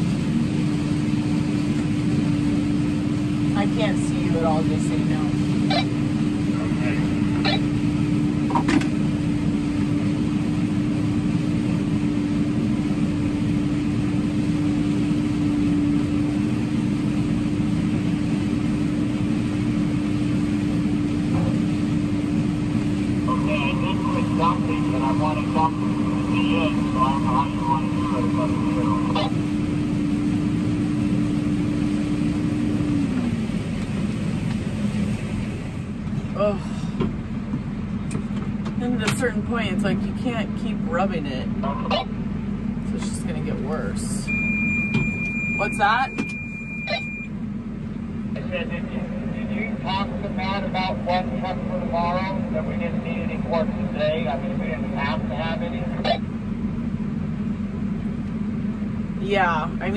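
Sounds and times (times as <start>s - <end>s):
combine harvester engine drone: 0.0s - 59.9s.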